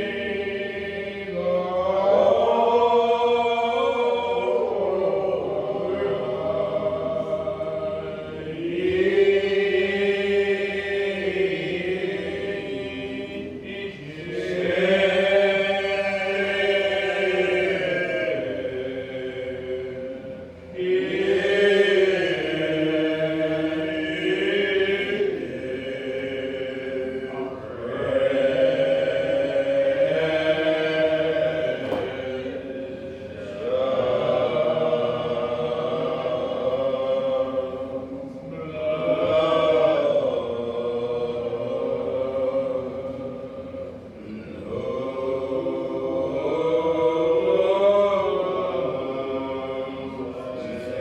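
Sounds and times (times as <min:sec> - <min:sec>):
unaccompanied hymn singing: 0:00.0 - 0:51.0.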